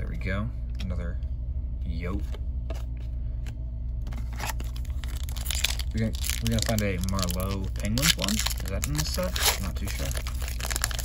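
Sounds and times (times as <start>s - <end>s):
steady low hum: 0.0s - 11.0s
foil pack crinkling and tearing: 4.4s - 11.0s.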